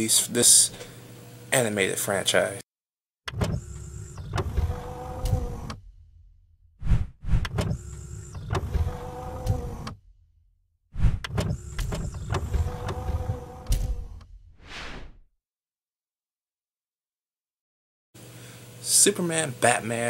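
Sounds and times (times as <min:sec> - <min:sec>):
mechanical whir with clunks: 0:03.2 - 0:14.6.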